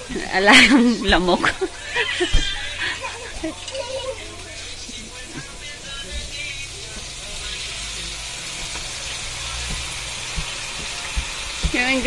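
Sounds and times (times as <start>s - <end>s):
vegetables sizzling in a wok: 6.3s - 12.0s.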